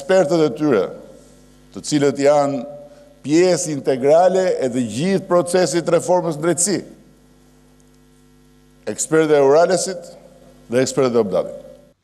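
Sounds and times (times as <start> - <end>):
man speaking: 0.0 - 1.2, 1.8 - 7.1, 8.9 - 11.8
steady electrical hum: 0.0 - 12.0.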